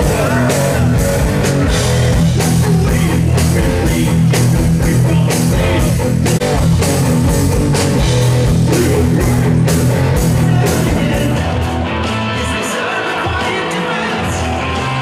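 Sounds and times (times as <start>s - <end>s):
drum kit beat: 0.0s - 15.0s
electric guitars: 0.0s - 15.0s.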